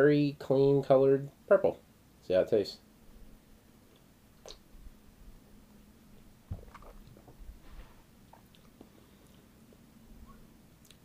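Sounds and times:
man's mouth sounds tasting drink: 3.9 - 4.7.

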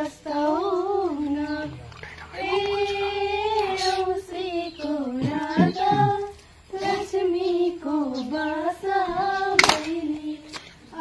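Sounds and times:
girls singing together: 0.0 - 11.0.

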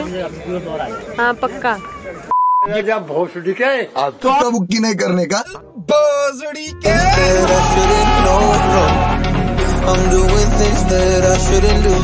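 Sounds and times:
electronic censor bleep: 2.3 - 2.7.

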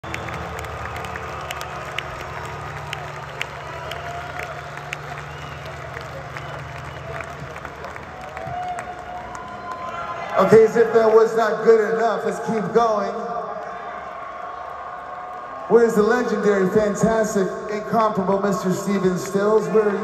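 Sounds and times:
crowd applauding and cheering: 0.0 - 20.0
whistles from crowd: 3.7 - 7.5.

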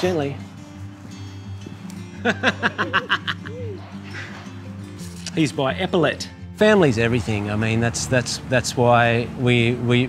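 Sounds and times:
background music: 0.0 - 10.0
person laughing: 2.2 - 4.8.

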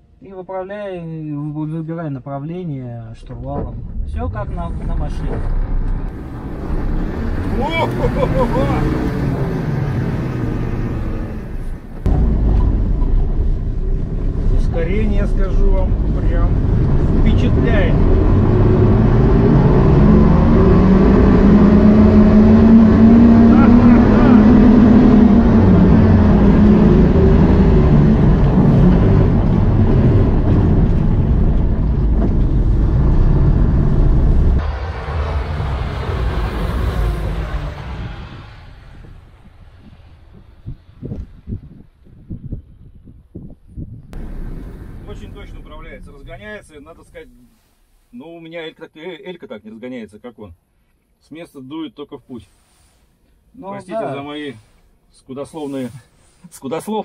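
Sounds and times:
electric vehicle drivetrain rumble: 20.2 - 41.9.

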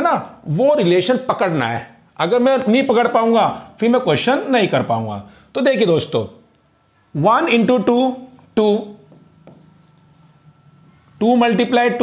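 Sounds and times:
man speaking: 0.0 - 6.4, 7.1 - 9.1, 11.2 - 12.0
stylus scratching and tapping on screen: 7.7 - 11.8.

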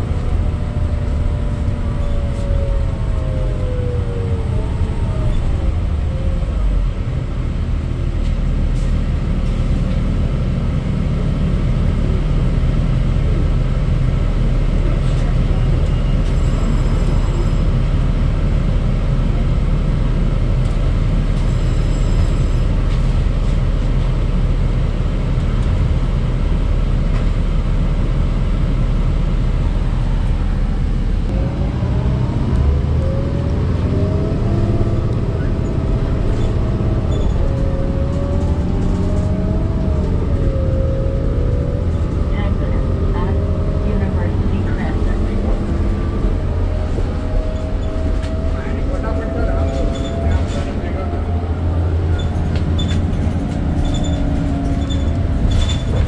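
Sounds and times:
bus diesel engine: 0.0 - 56.0.

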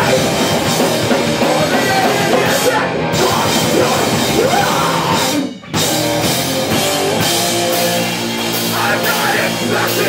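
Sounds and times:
punk band playing live: 0.0 - 10.0.

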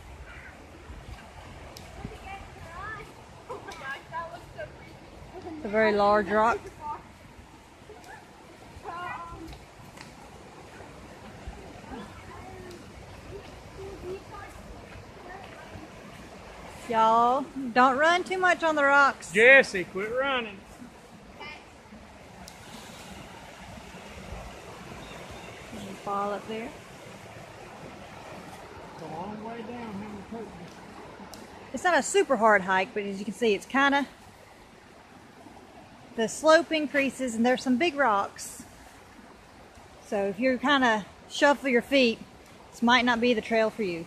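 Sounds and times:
stream rushing over rocks: 0.0 - 44.0.

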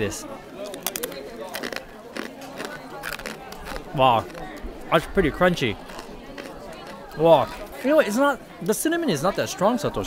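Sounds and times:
cookie crunching: 0.6 - 7.3.

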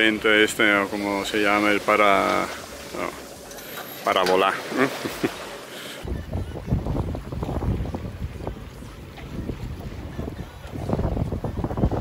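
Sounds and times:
water rushing past hull: 0.0 - 12.0
wind gusting on microphone: 6.0 - 12.0.

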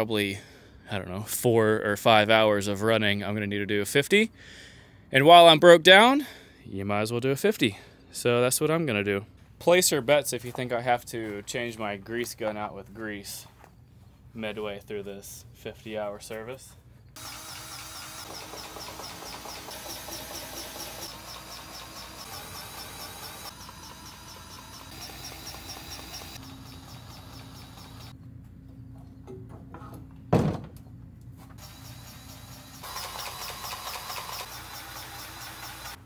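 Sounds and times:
grease gun motor whirring: 17.2 - 28.2, 31.6 - 36.0.

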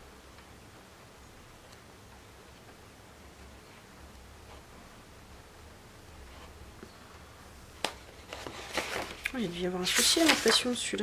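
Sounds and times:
paper rustling: 7.8 - 11.0.

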